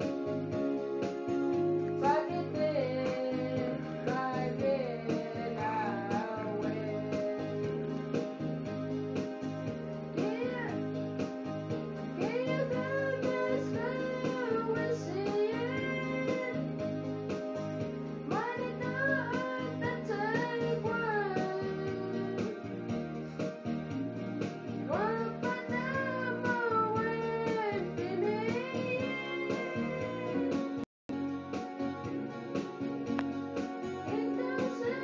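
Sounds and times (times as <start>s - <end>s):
electronic keyboard chords: 0.0s - 35.0s.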